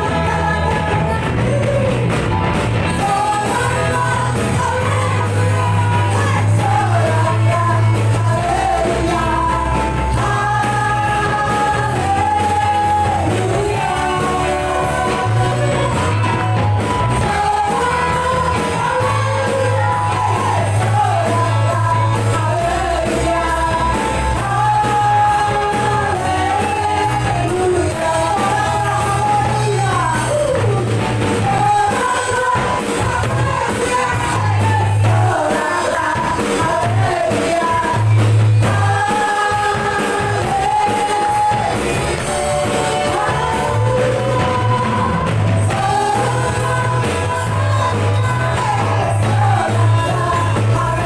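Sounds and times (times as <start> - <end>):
bass: 0.0 - 51.0
electric guitar: 0.0 - 51.0
keyboard: 0.0 - 51.0
steady drum beat: 0.0 - 51.0
voices singing together: 0.0 - 51.0.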